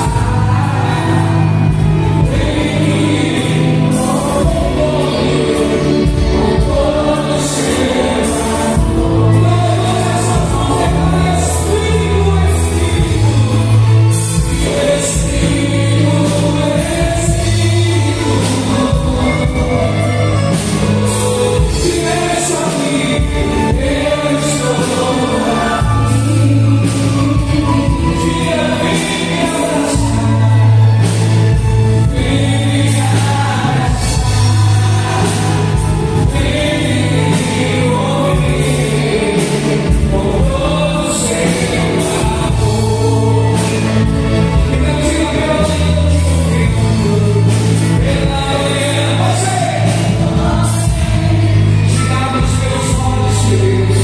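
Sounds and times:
electronic keyboard accompaniment: 0.0s - 54.0s
group singing gospel song: 0.0s - 54.0s
sustained bass: 0.0s - 54.0s.

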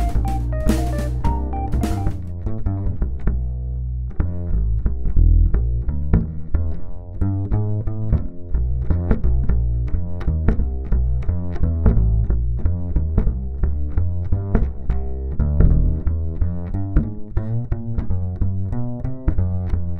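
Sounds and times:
double bass plucked notes: 0.0s - 19.9s.

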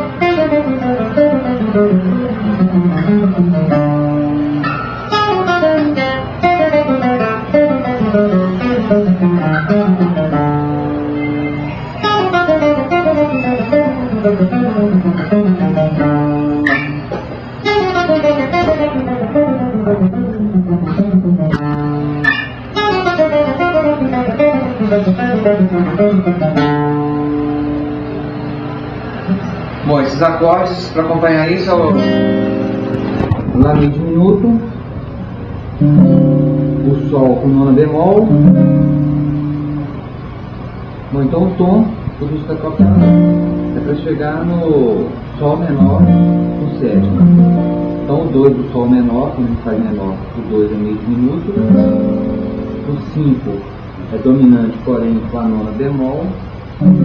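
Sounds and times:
guitar fast descending runs: 0.0s - 40.4s, 41.8s - 48.9s, 56.7s - 57.0s.

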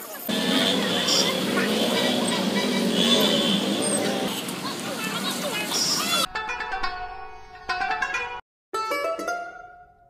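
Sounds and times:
traffic on wet road: 0.0s - 6.3s.

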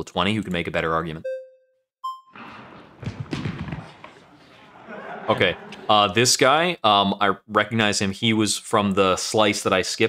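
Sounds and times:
electronic countdown beep: 1.2s - 2.4s
thuds and scuffs: 2.4s - 4.7s.

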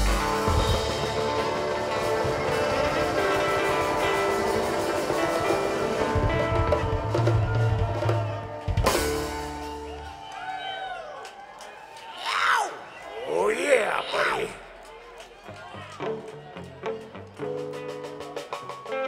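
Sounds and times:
live string band playing: 0.0s - 10.0s, 16.0s - 19.0s
crowd cheering and whooping: 0.4s - 16.8s, 18.3s - 19.0s.

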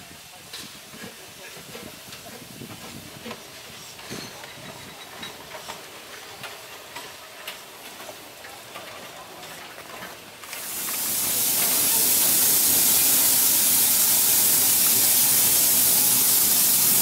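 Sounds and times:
loud steam hiss: 0.0s - 8.3s, 10.3s - 17.0s
train clicks and clanks: 0.1s - 17.0s.

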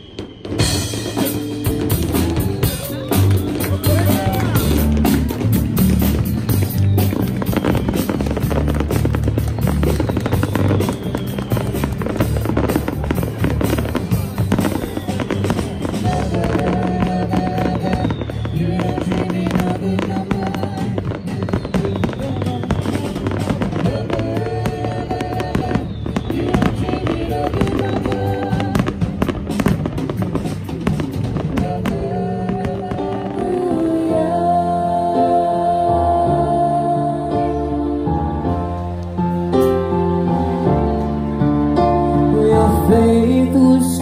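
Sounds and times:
fireworks bangs and crackles: 0.0s - 34.4s
music playing: 0.0s - 44.0s.

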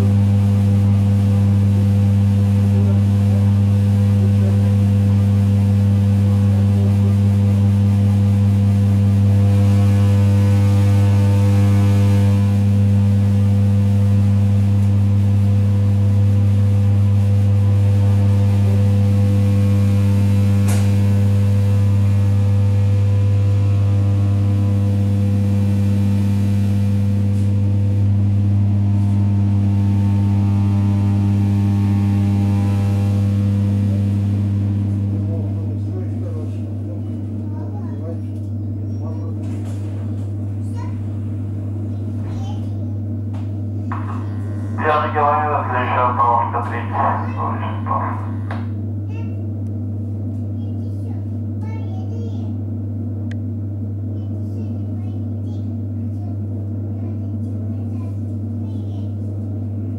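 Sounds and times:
electric train hum: 0.0s - 59.9s.

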